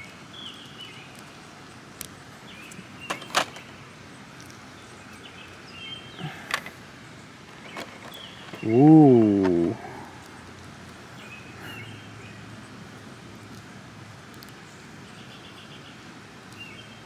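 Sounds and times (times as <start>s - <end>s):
small plastic clicks and snaps: 14.3s - 14.6s.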